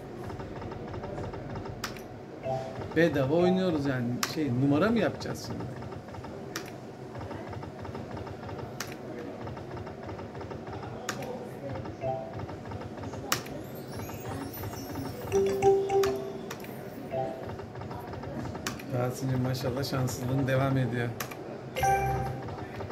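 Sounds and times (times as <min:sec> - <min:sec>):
short chiming tones: 0:13.8 - 0:16.9.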